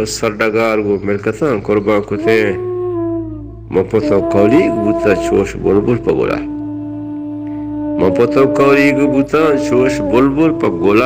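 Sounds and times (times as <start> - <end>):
low hum: 1.6 - 11.0
person singing long notes: 2.2 - 11.0.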